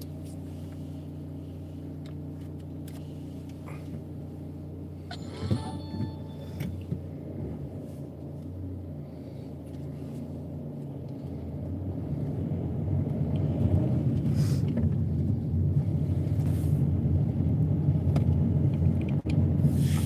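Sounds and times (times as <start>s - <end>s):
car rumble from inside cabin: 0.0s - 20.0s.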